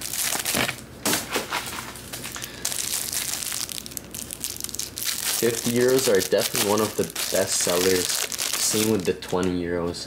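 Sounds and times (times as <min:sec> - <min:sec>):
plastic shrink wrap crinkling: 0:00.0 - 0:09.8.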